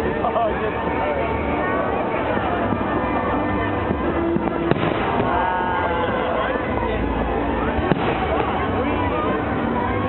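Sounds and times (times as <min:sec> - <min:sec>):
crowd chatter: 0:00.0 - 0:10.0
firework bang: 0:03.9 - 0:05.8, 0:07.8 - 0:08.6.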